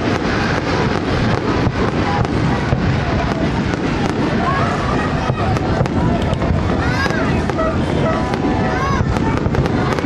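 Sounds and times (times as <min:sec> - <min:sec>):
fireworks bangs and crackles: 0:00.0 - 0:10.0
fireworks booms rumbling: 0:00.0 - 0:10.0.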